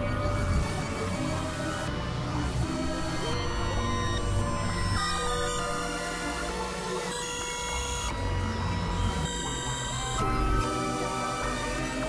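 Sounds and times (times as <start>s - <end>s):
experimental electronic music: 0.0s - 12.0s.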